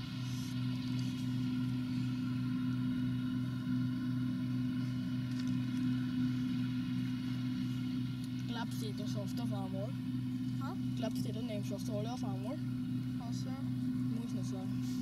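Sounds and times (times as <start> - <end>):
combine harvester droning: 0.0 - 15.0.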